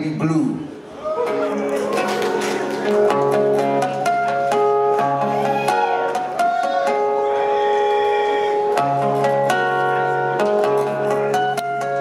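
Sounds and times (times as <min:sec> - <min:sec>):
acoustic-electric guitar: 0:01.2 - 0:12.0.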